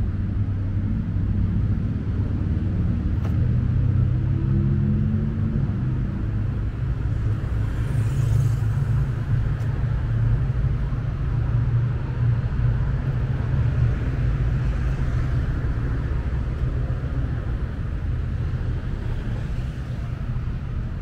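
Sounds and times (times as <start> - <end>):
low rumble of traffic engines: 0.0 - 21.0
passing vehicle hiss: 7.4 - 9.4.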